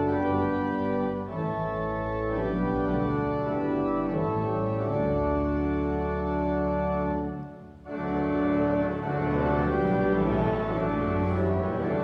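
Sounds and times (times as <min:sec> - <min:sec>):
church organ playing a hymn: 0:00.0 - 0:12.0.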